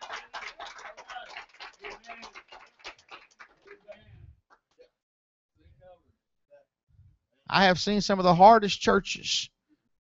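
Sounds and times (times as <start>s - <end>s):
congregation clapping: 0.0s - 4.9s.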